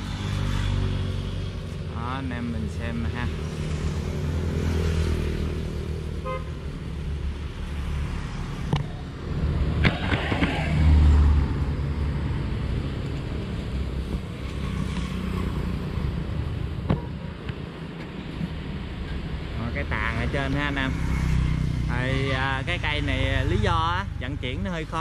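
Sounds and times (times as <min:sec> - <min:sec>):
traffic passing: 0:00.0 - 0:25.0.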